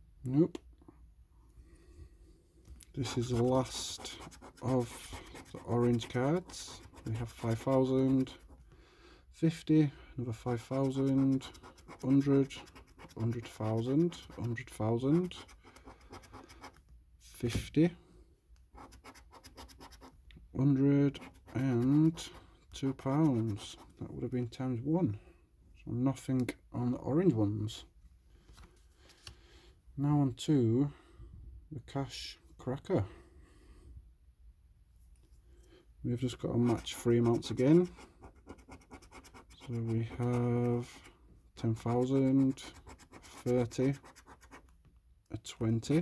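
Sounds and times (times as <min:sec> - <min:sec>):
coin scraping scratch card: 0:03.0 - 0:08.5, 0:10.6 - 0:16.7, 0:36.6 - 0:41.0, 0:41.8 - 0:44.6.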